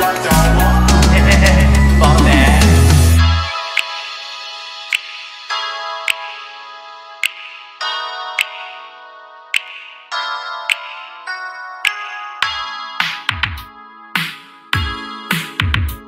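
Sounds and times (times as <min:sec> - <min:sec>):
sustained synthesizer chords: 0:00.0 - 0:03.8
synthpop beat: 0:00.0 - 0:16.0.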